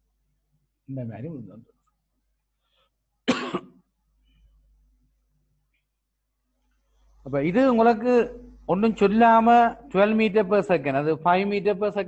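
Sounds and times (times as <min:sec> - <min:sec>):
sharp cough: 0:03.2 - 0:03.9.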